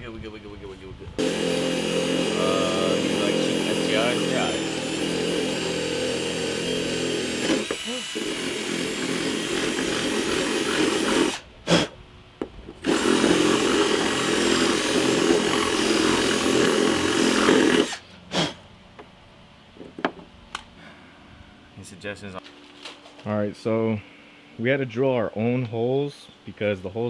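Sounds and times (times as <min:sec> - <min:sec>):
power drill boring holes: 0:01.2 - 0:11.4, 0:12.8 - 0:18.0.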